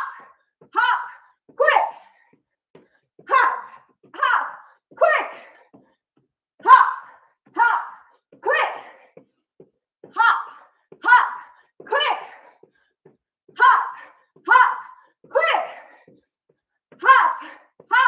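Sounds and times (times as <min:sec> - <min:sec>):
woman calling workout cues: 0:00.0 - 0:02.3, 0:03.2 - 0:05.8, 0:06.6 - 0:09.2, 0:10.0 - 0:12.6, 0:13.5 - 0:16.2, 0:16.9 - 0:18.0.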